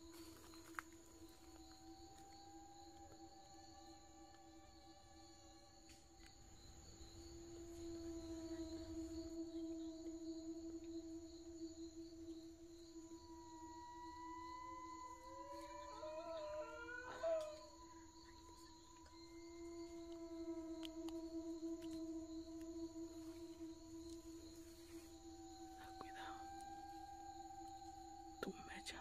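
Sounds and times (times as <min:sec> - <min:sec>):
eerie ambient drone: 0:00.0 - 0:29.0
slow wailing glides: 0:00.0 - 0:29.0
wavering cry: 0:07.8 - 0:28.5.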